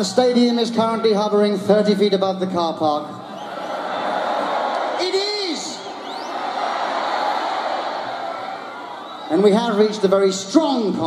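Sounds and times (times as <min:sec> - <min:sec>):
crowd cheering and shouting: 0:03.2 - 0:11.0
faint whistles: 0:05.7 - 0:06.4.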